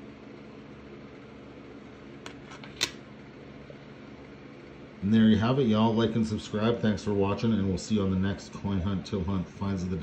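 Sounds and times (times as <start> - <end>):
fan humming: 0.0 - 10.0.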